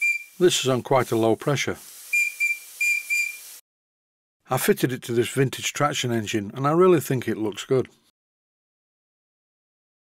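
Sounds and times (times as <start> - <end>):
steam whistle toots: 0.0 - 0.6, 2.1 - 3.5.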